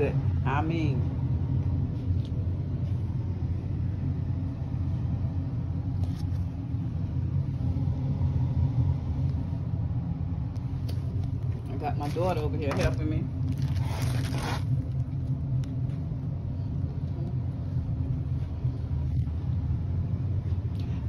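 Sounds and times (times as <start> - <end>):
steady low rumble: 0.0 - 21.0.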